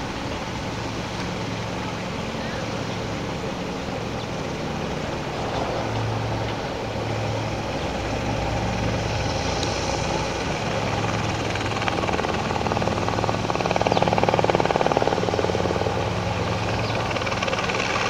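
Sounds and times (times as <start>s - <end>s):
helicopter blades beating: 0.0s - 18.0s
helicopter engine and rotor drone: 0.0s - 18.0s.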